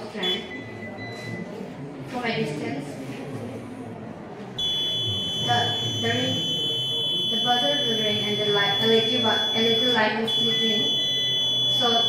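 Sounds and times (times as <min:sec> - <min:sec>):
high-pitched electronic buzzer: 0:04.6 - 0:12.0.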